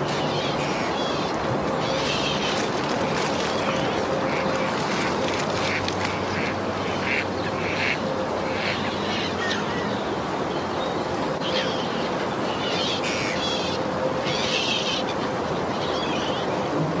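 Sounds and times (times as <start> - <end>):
outdoor background noise: 0.0 - 17.0
bird calls: 0.1 - 10.0.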